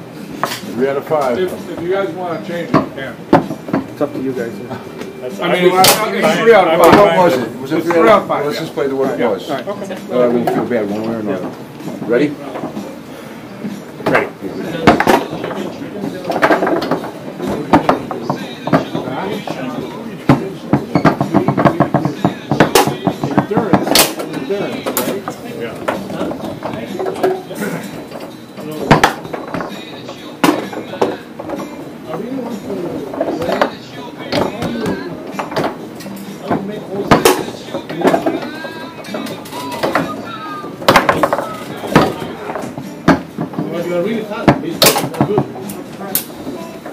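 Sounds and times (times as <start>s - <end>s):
background music: 0.0s - 46.9s
hubbub of voices: 0.0s - 46.9s
foosball ball knocking: 0.4s - 4.1s, 5.4s - 8.3s, 10.3s - 13.0s, 13.6s - 46.9s.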